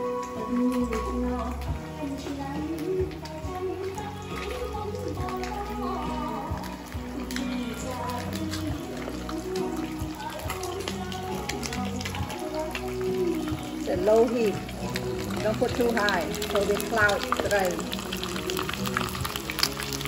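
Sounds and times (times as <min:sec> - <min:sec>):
background music with gliding notes: 0:00.0 - 0:20.0
fish frying in hot oil: 0:00.0 - 0:20.0.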